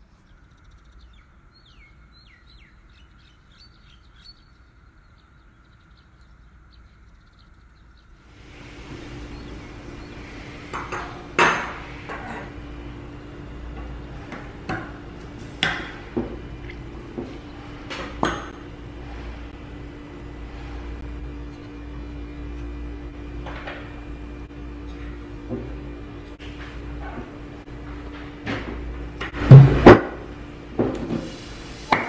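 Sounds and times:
room hum: 0:00.0 - 0:32.0.

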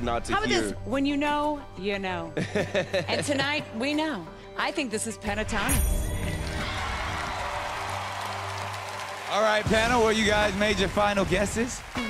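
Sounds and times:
audience applauding and cheering: 0:06.2 - 0:12.0.

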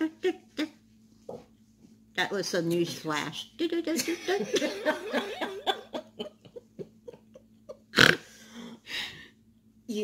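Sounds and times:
woman laughing stifled: 0:04.0 - 0:08.0.

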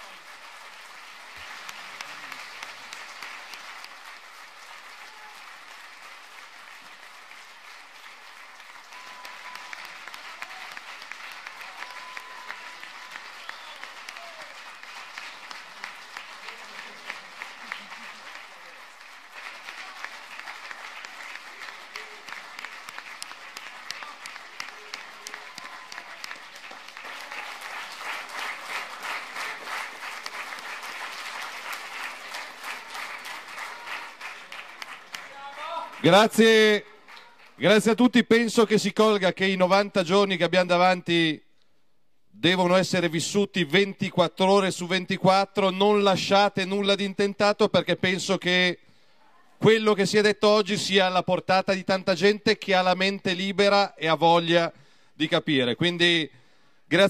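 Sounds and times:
audience applauding: 0:00.0 - 0:38.0.

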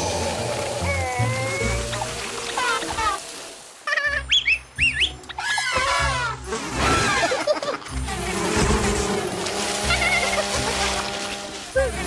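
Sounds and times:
squeaky cartoon sound effects: 0:03.9 - 0:07.6.

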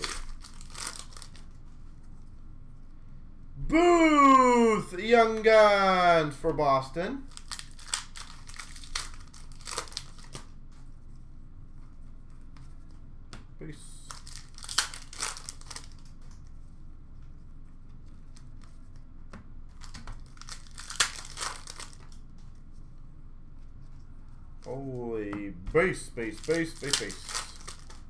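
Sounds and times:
card pack wrappers crinkling: 0:00.0 - 0:01.6, 0:07.2 - 0:10.6, 0:14.0 - 0:16.3, 0:19.7 - 0:22.2, 0:25.8 - 0:28.0
cards being handled: 0:00.0 - 0:02.2, 0:07.3 - 0:11.2, 0:11.8 - 0:22.9, 0:23.6 - 0:28.0.

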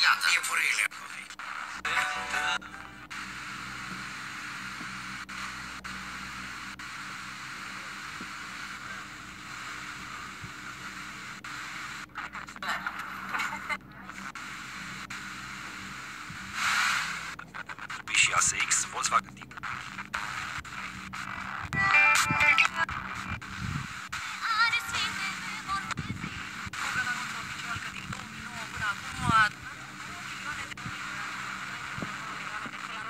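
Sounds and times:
radio static hiss: 0:00.0 - 0:33.0
weak radio station burst: 0:00.0 - 0:33.0.

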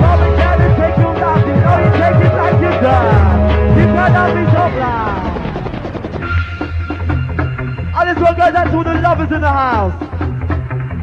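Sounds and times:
rave music: 0:00.0 - 0:11.0
synth gliding down in pitch: 0:02.1 - 0:06.8.

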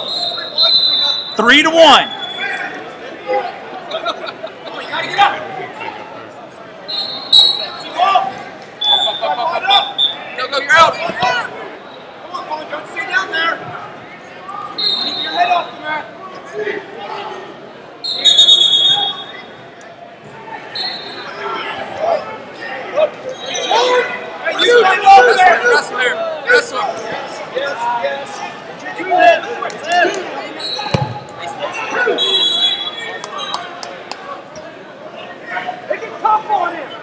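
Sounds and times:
whistle blasts: 0:00.0 - 0:02.6, 0:06.9 - 0:07.9, 0:08.8 - 0:09.2, 0:09.8 - 0:10.3, 0:14.8 - 0:15.6, 0:18.0 - 0:19.5, 0:20.8 - 0:21.3, 0:30.6 - 0:31.2, 0:32.2 - 0:33.6
hubbub of voices: 0:00.0 - 0:37.0.

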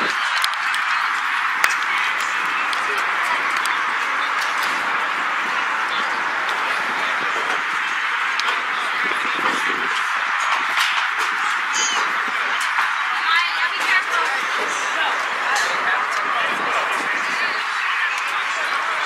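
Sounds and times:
distant indistinct voices: 0:00.0 - 0:19.0.

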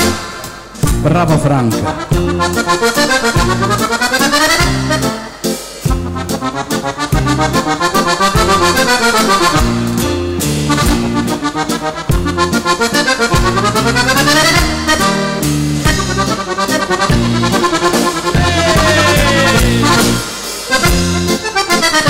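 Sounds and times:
accordion playing fast dance music: 0:01.6 - 0:22.0.

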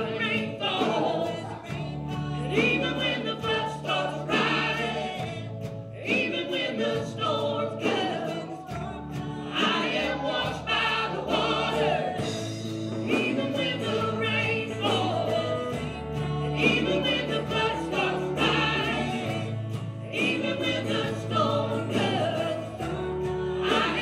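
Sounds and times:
band with electric guitar: 0:00.0 - 0:24.0
woman singing into microphone: 0:00.0 - 0:24.0.

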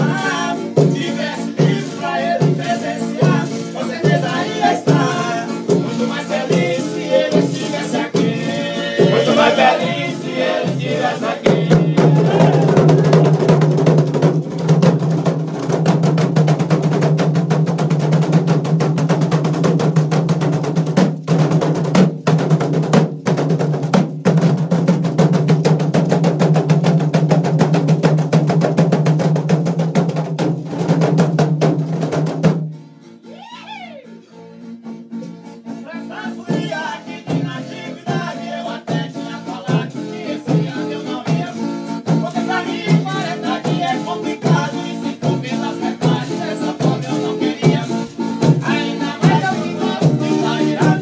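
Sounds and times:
person singing: 0:00.0 - 0:13.5, 0:33.3 - 0:34.4, 0:35.8 - 0:51.0
drum played in fast roll: 0:00.0 - 0:32.7, 0:36.3 - 0:51.0.

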